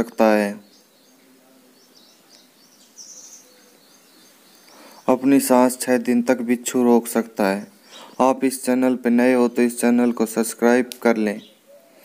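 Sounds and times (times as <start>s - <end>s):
small bird chirping: 0.4s - 6.1s, 7.2s - 8.4s, 11.3s - 12.0s.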